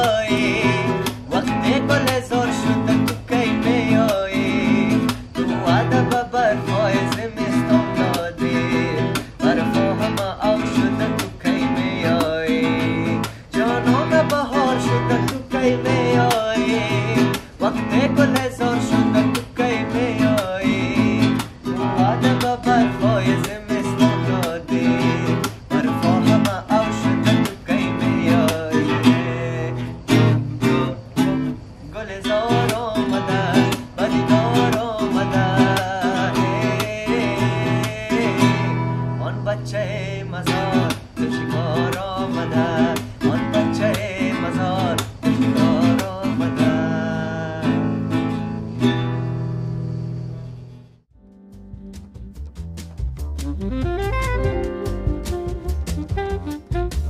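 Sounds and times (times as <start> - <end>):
classical guitar strumming: 0.0 - 57.0.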